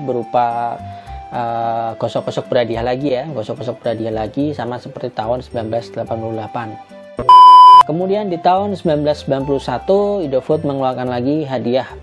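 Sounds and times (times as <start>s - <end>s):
high electronic beep: 7.2s - 7.8s.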